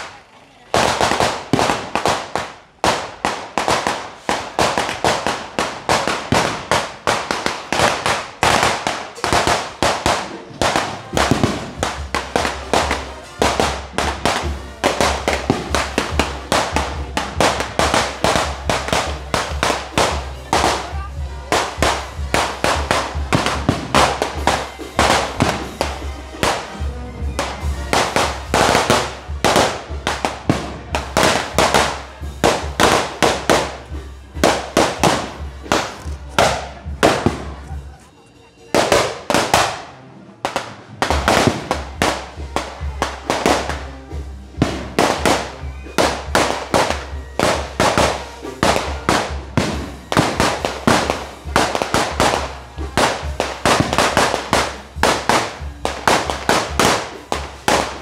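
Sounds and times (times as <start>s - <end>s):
firecrackers banging and crackling: 0.0s - 58.0s.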